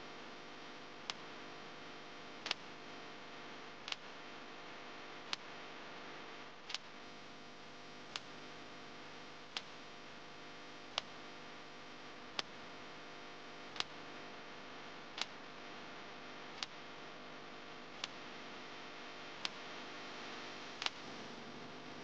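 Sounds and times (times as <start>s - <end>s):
faint steady hiss: 0.0s - 22.0s.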